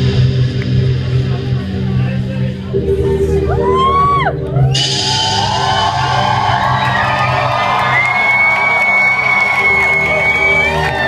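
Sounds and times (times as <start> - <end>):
electronic music with bass drone: 0.0 - 11.0
crowd cheering and whooping: 3.4 - 11.0.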